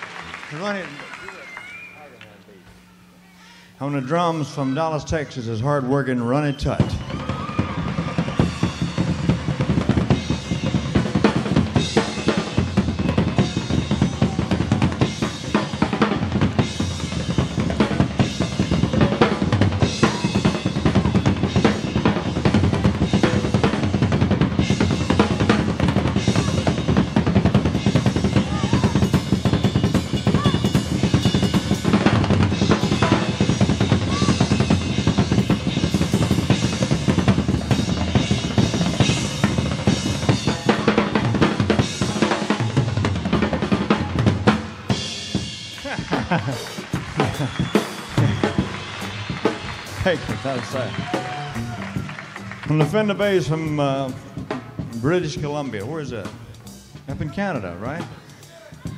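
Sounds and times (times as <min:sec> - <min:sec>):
drum kit solo: 0:06.6 - 0:58.9.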